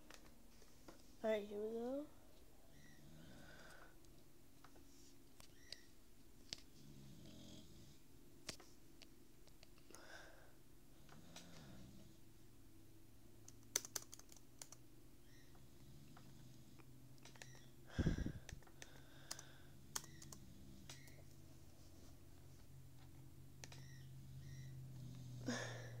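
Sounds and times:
low steady hum: 0:00.0 - 0:26.0
laptop keys clicking: 0:13.4 - 0:14.8, 0:17.2 - 0:17.7, 0:18.4 - 0:21.2, 0:23.6 - 0:24.0.

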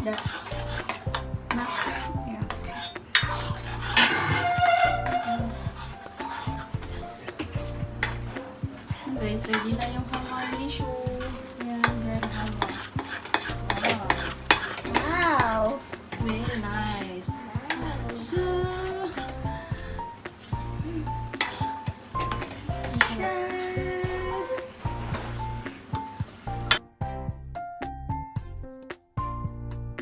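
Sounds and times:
light sizzle: 0:00.0 - 0:26.8
metal ladle scraping a pan: 0:00.0 - 0:26.8
background music: 0:00.0 - 0:30.0.

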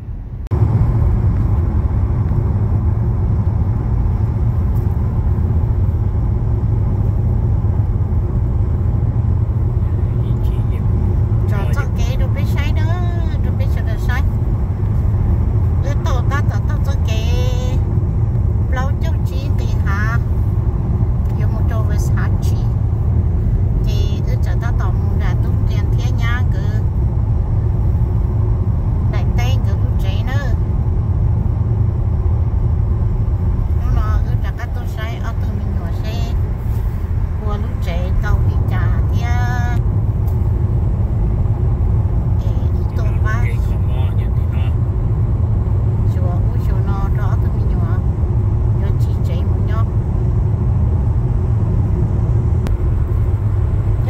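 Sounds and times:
car cabin road rumble: 0:00.0 - 0:54.0.

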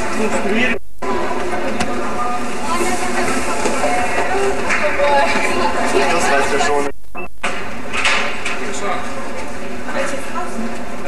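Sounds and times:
loud background din: 0:00.0 - 0:11.0.

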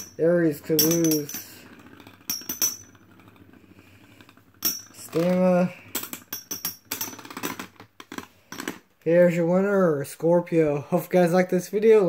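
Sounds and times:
spinning tops clashing metallically: 0:00.0 - 0:07.8
spinning tops whirring: 0:00.0 - 0:08.6.

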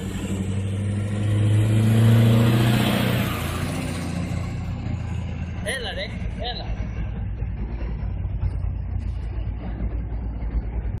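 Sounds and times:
diesel truck rumbling away: 0:00.0 - 0:11.0.

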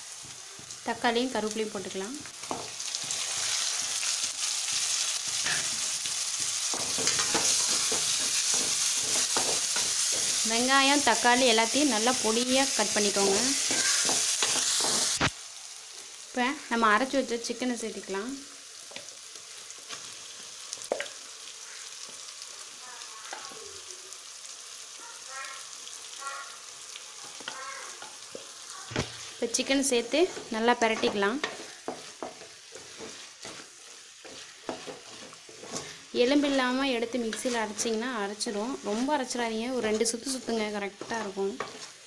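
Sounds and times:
vegetables sizzling in hot oil: 0:00.0 - 0:42.0
wooden spatula stirring pan: 0:02.2 - 0:15.2, 0:27.2 - 0:42.0.

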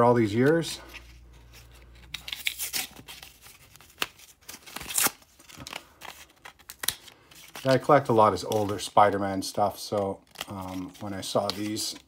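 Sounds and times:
blister packaging crinkling: 0:00.3 - 0:09.2.

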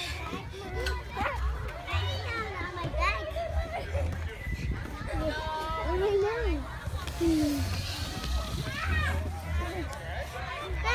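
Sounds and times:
young children calling and chattering: 0:00.0 - 0:10.9.

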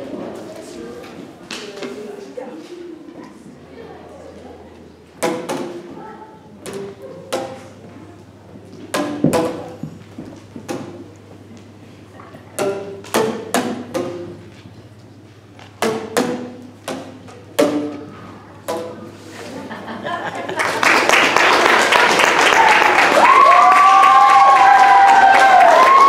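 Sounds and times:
tuned plastic tubes struck: 0:05.2 - 0:05.9, 0:06.6 - 0:07.9, 0:08.9 - 0:09.8, 0:12.5 - 0:14.5, 0:15.7 - 0:19.1.

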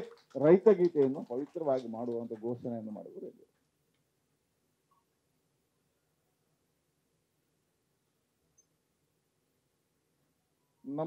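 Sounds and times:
man speaking into a microphone: 0:00.0 - 0:03.4.

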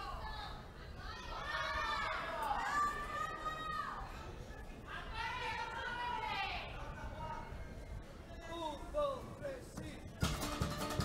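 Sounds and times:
strummed guitar: 0:10.2 - 0:11.0.

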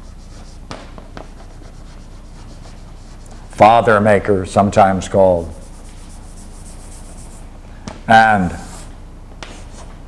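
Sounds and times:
chalk tapping and scraping: 0:00.0 - 0:03.6, 0:05.4 - 0:07.4, 0:08.6 - 0:10.0
steady low hum: 0:00.0 - 0:10.0.

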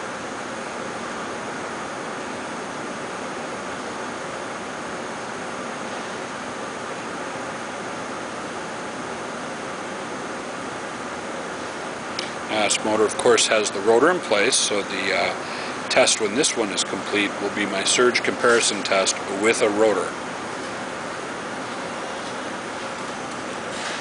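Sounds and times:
faint hum: 0:00.0 - 0:24.0.

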